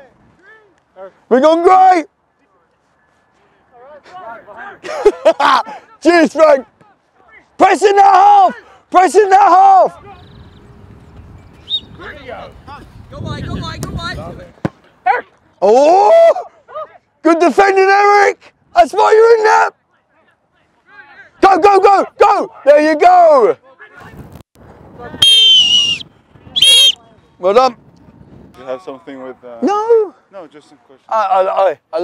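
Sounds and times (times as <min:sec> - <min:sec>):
faint outdoor background noise: 0:00.0 - 0:32.0
shrill whistle blast: 0:11.6 - 0:12.0, 0:25.2 - 0:27.0.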